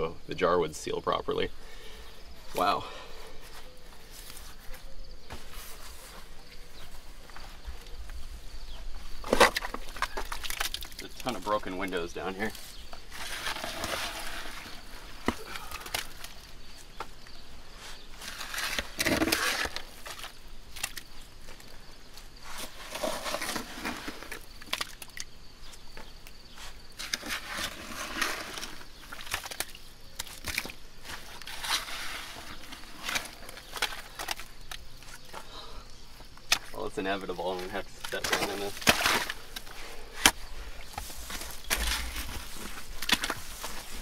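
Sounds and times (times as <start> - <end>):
shovel scooping wet mud: 22.6 - 24.9, 27.0 - 34.5, 38.1 - 40.4.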